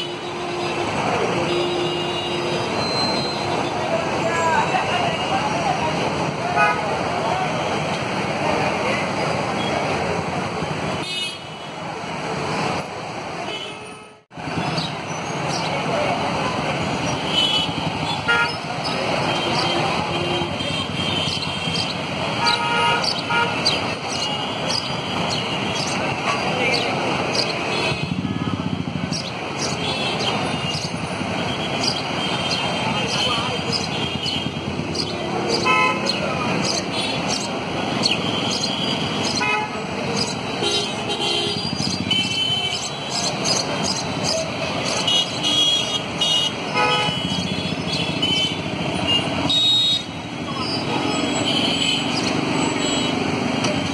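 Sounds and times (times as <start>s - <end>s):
vehicle horns tooting: 0.0s - 5.4s, 13.4s - 14.3s, 17.1s - 25.9s, 29.6s - 43.5s, 44.8s - 53.4s
crowd noise: 0.0s - 53.9s
street traffic: 0.0s - 53.9s.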